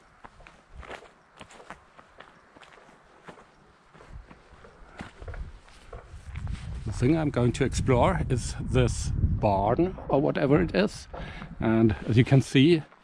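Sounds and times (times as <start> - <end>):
footsteps on gravel: 0.2 - 7.0.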